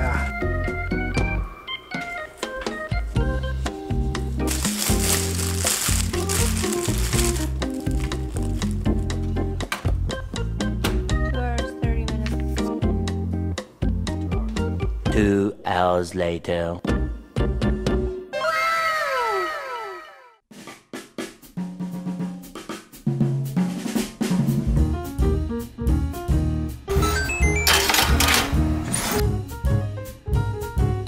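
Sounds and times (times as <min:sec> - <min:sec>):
plastic bag crinkling: 0:04.3 - 0:09.1.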